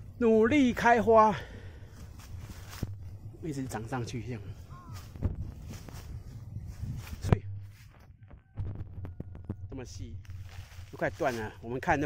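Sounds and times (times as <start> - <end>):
footsteps on dry leaves: 1.9 - 3.9, 4.5 - 8.1, 10.2 - 12.0.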